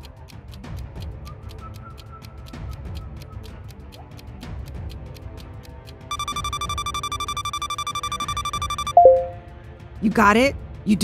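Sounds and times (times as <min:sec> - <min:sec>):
background music: 0:00.0 - 0:11.0
fast electronic beeping alarm: 0:06.1 - 0:09.4
low timer tone: 0:06.1 - 0:09.4.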